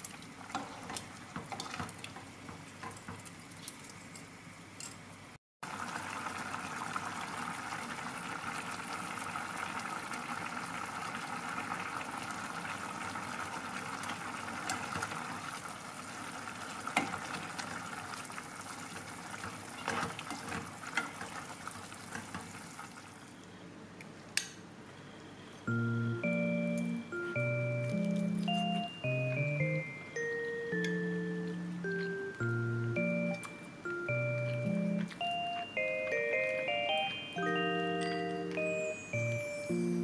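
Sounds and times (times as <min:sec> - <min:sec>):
stew bubbling in a pot: 0:05.6 - 0:23.3.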